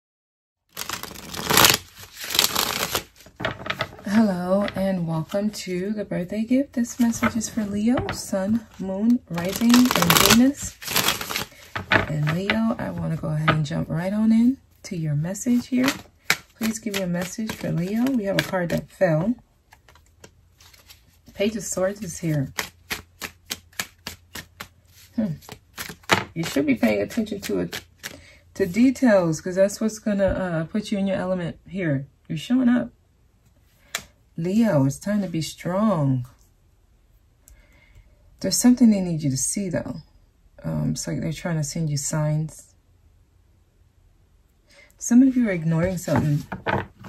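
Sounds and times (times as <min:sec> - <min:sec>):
cards being shuffled: 0:00.7 - 0:05.5, 0:06.8 - 0:13.7, 0:15.4 - 0:28.2, 0:45.8 - 0:47.0.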